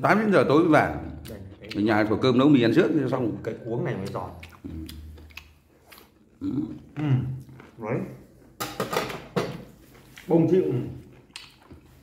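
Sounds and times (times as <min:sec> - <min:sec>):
man speaking: 0:00.0 - 0:05.1, 0:10.2 - 0:11.1
man eating crunchy food: 0:04.0 - 0:07.8, 0:11.0 - 0:12.0.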